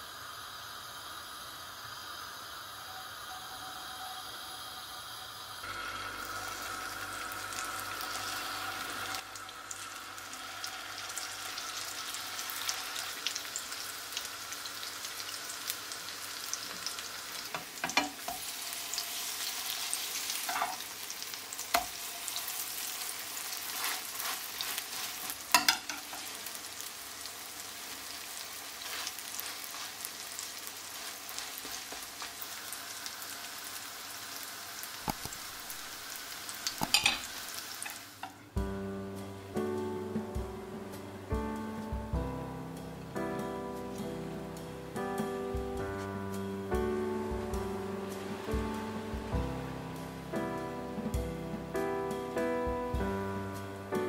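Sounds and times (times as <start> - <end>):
patties sizzling in oil: 0.0 - 39.8, 43.8 - 53.9.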